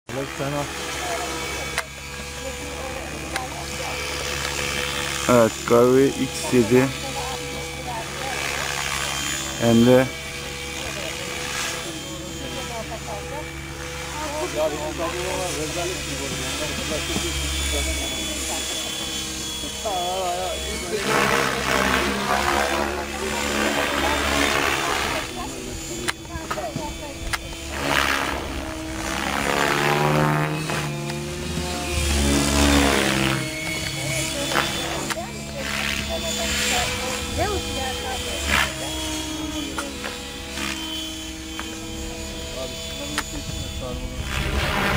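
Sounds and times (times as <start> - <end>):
model helicopter rotor whine: 0.1 - 44.9.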